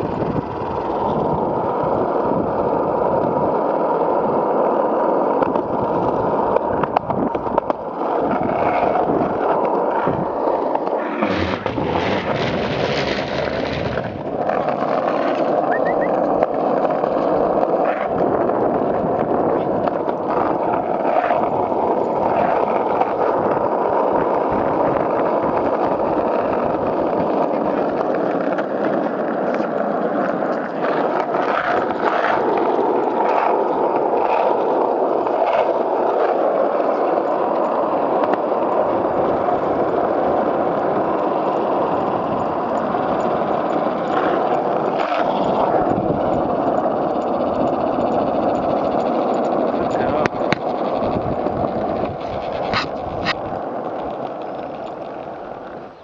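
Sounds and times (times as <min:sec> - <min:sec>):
skateboard clicks over bumps: 0:00.0 - 0:56.0
skateboard wheels rolling on asphalt: 0:00.0 - 0:56.0.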